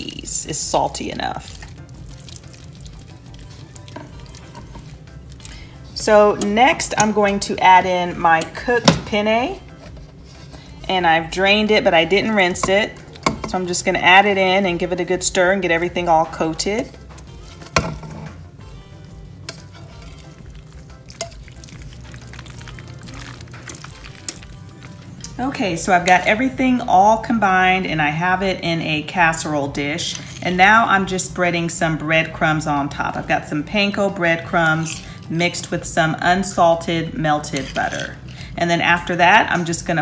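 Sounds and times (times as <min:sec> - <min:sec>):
soft background music: 0:00.0 - 0:40.0
spatula stirring thick sauce: 0:01.4 - 0:06.6, 0:16.5 - 0:25.1, 0:37.2 - 0:38.4.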